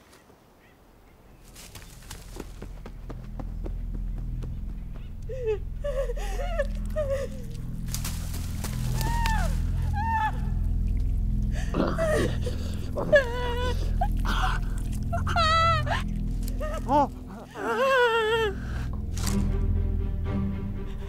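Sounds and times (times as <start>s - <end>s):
low ominous music drone: 1.1s - 21.0s
whimpering cries: 5.3s - 7.6s, 11.8s - 18.8s.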